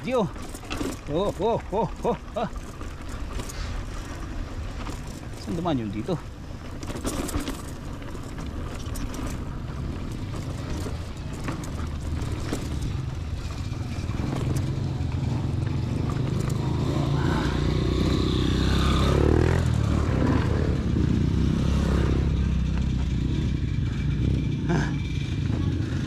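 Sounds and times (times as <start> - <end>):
dirt bike engines passing: 0.0 - 26.0.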